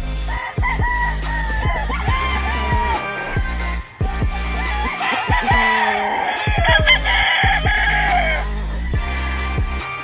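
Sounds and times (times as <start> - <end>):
background music with steady beat: 0.0 - 10.0
rooster crowing: 0.3 - 8.6.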